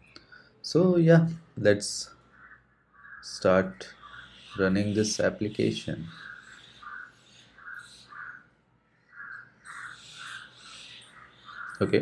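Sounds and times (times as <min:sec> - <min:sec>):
bird calling: 0:01.8 - 0:12.0.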